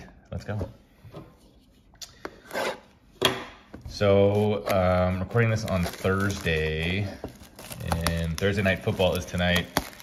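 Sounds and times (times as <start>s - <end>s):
knife cutting plastic wrap: 4.2s - 10.0s.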